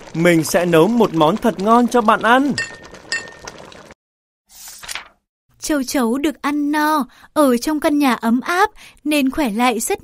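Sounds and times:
spoon clinking against pot: 0:02.6 - 0:03.6.

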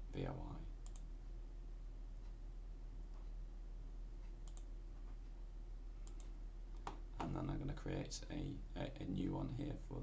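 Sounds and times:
low electrical hum: 0:00.0 - 0:10.0
computer mouse clicks: 0:00.8 - 0:01.1, 0:04.4 - 0:04.7, 0:06.0 - 0:07.0.

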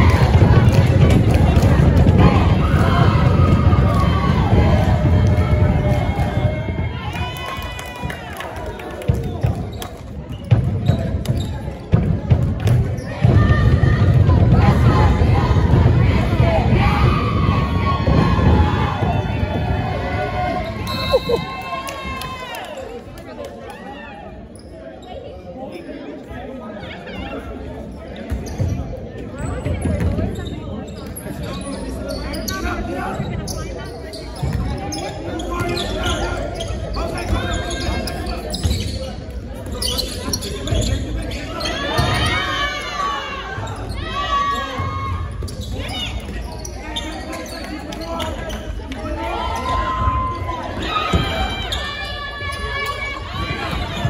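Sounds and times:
voices and shouts echoing: 0:00.0 - 0:54.0.

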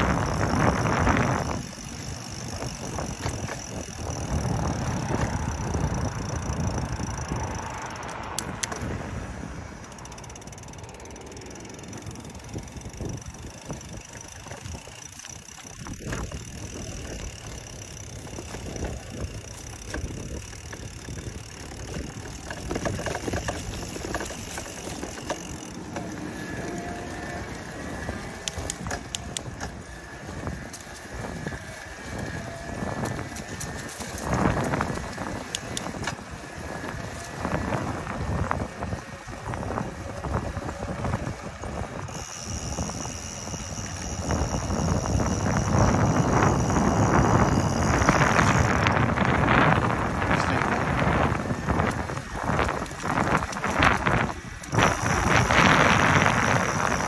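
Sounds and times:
bike clicking and rattling: 0:00.0 - 0:57.0
tyres rolling on pavement: 0:00.0 - 0:57.0.

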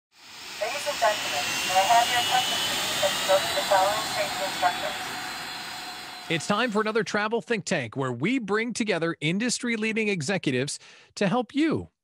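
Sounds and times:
faint rising whine: 0:00.2 - 0:07.0.

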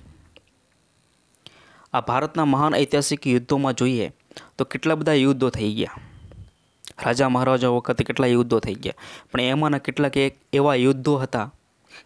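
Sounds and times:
soft breath: 0:01.4 - 0:01.9, 0:09.0 - 0:09.3
man speaking: 0:01.9 - 0:06.1, 0:06.9 - 0:11.6.

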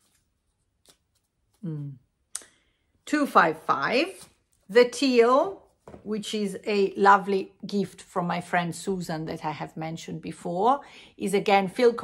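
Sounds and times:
paper rustling: 0:00.0 - 0:01.6.

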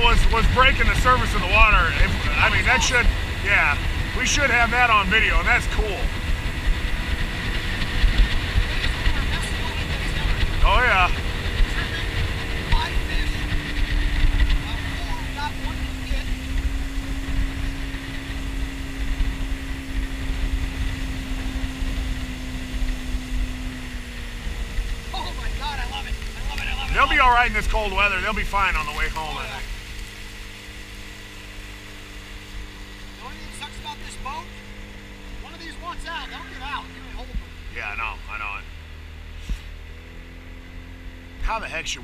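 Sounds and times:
wind rumbling on microphone: 0:00.0 - 0:33.3
outboard motor running: 0:00.0 - 0:42.0.

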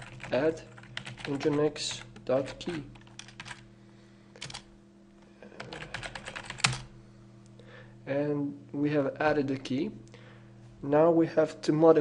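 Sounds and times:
computer keyboard typing: 0:00.0 - 0:03.6, 0:04.4 - 0:04.7, 0:05.6 - 0:06.9.

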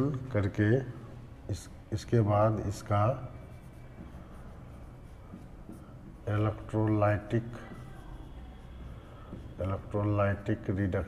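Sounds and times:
pen scratching on paper: 0:02.7 - 0:10.6.

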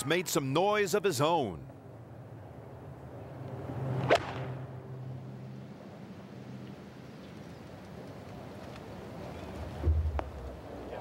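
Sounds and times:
faint open-air ambience: 0:00.0 - 0:11.0
club striking golf ball: 0:04.0 - 0:04.6
golf club swish: 0:04.0 - 0:04.6.

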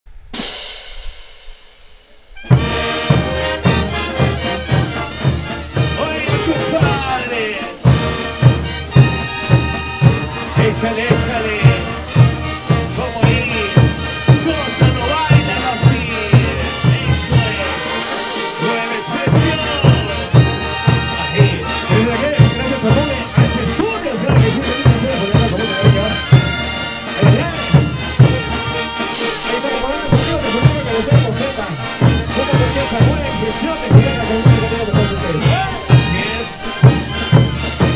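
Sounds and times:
brass band playing dance music: 0:00.3 - 0:37.9
bass drum beating: 0:02.4 - 0:29.0, 0:30.1 - 0:37.9.

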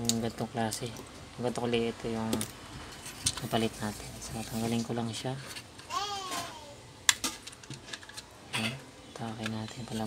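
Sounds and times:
plastic parts clicking and tapping: 0:07.1 - 0:10.0.

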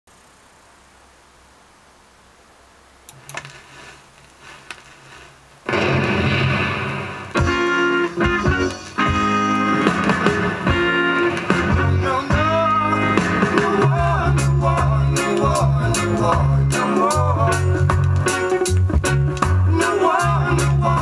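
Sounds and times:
vinyl record hiss: 0:00.1 - 0:21.0
reggae band playing: 0:07.3 - 0:21.0.

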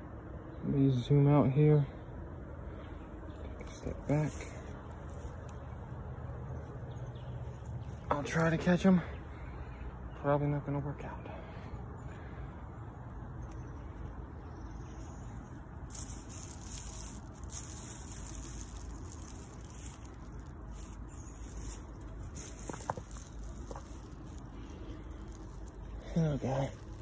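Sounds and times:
steady outdoor hiss: 0:00.0 - 0:27.0
footsteps rustling through plants: 0:03.8 - 0:08.8, 0:14.5 - 0:27.0.

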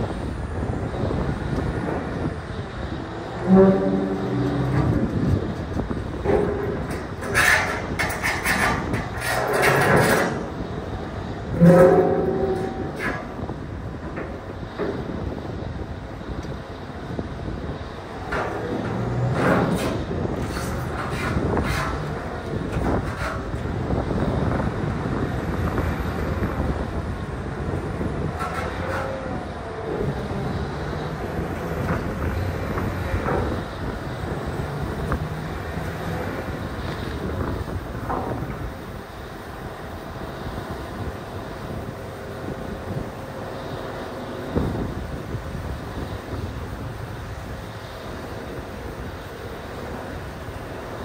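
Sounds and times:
diesel engine revving: 0:00.0 - 0:51.0
stone and steel knocks and scrapes: 0:06.2 - 0:10.5, 0:11.6 - 0:13.4, 0:18.3 - 0:23.4, 0:28.4 - 0:29.2.

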